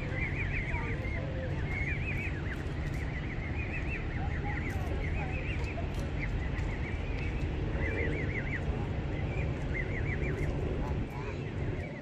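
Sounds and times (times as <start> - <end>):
bird trilled call: 0.0 - 12.0
steady low rumble: 0.0 - 12.0.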